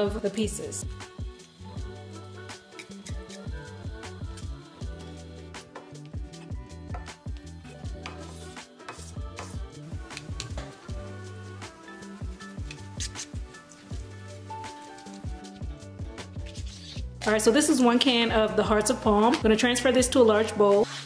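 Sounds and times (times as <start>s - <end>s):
background music with bass line: 0.0s - 21.0s.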